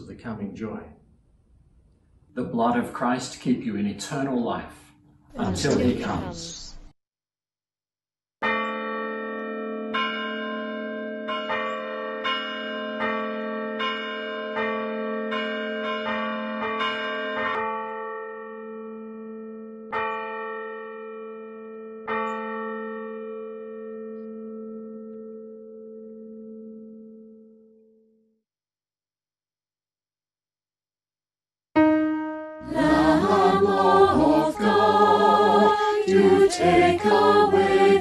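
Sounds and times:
bells struck: 0:08.4 - 0:26.7.

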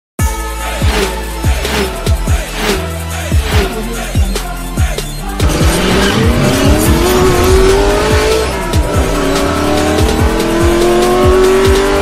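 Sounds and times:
electronic music beat: 0:00.2 - 0:12.0
car engine revving: 0:00.8 - 0:12.0.

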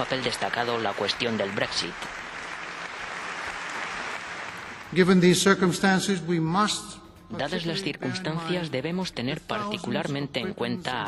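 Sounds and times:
large audience applauding: 0:00.0 - 0:05.6.

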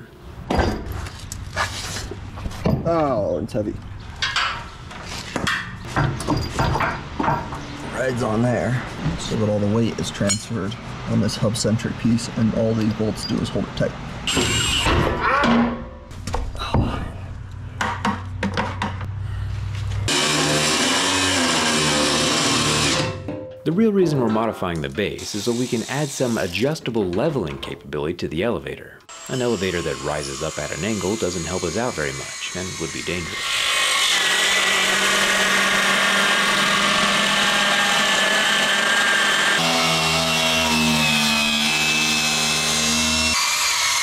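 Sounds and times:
grinder cutting steel: 0:14.3 - 0:14.9, 0:20.1 - 0:23.2, 0:25.2 - 0:26.6, 0:29.1 - 0:44.0.

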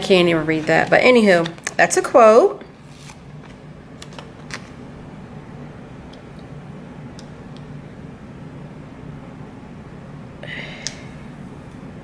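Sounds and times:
washing machine humming: 0:00.0 - 0:12.0.

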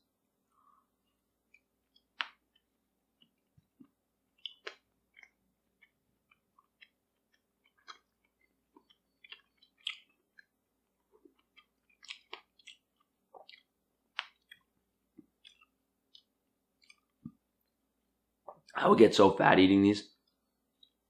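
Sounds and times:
person chewing with wet smacks: 0:01.0 - 0:17.8, 0:18.4 - 0:18.8, 0:20.2 - 0:21.0.

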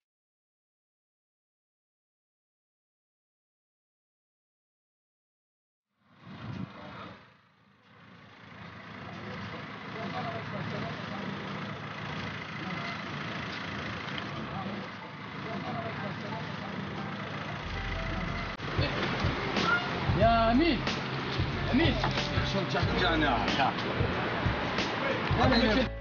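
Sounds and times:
outdoor background noise: 0:06.0 - 0:26.0
faint indistinct voices: 0:08.9 - 0:20.2.

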